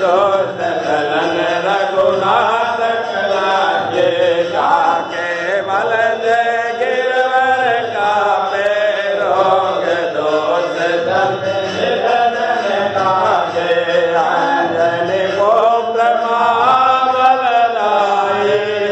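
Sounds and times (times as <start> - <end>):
person chanting a hymn: 0.0 - 18.9.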